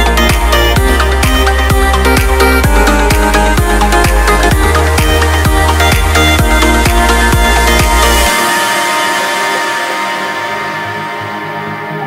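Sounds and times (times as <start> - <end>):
background music sustained tones: 0.0 - 12.0.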